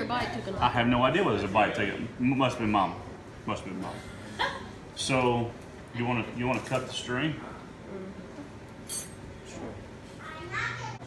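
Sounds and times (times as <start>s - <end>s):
kitchen knife clink: 8.8s - 9.2s.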